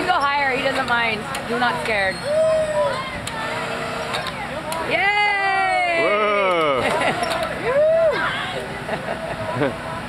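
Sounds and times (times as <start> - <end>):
faint voices: 0.0 - 10.0
steady outdoor hum: 0.0 - 10.0.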